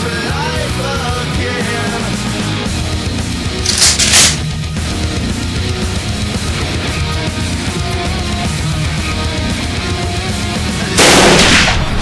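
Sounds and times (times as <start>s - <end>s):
heavy metal music: 0.0s - 11.7s
loud shotgun blast: 11.0s - 12.0s.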